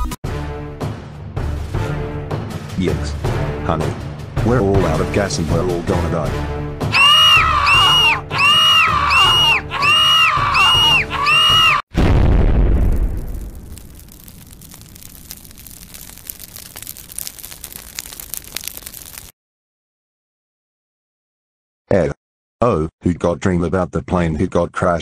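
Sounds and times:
loud explosion: 0:11.9 - 0:19.2
fire crackling: 0:12.0 - 0:19.4.

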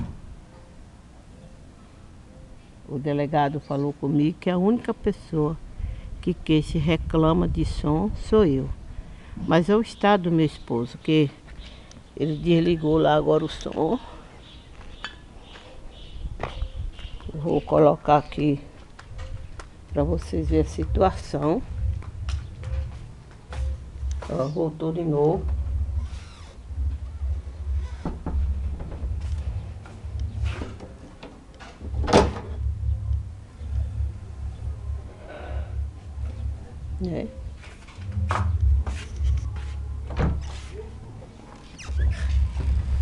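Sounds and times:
pulsing deep bass music: 0:25.4 - 0:30.8, 0:31.9 - 0:40.4, 0:42.0 - 0:43.0.

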